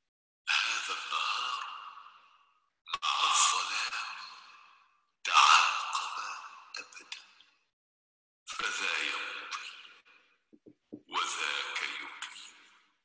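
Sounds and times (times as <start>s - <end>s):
degraded man's recitation: 3.0s - 4.3s, 5.3s - 7.0s, 8.5s - 9.3s, 11.1s - 12.5s.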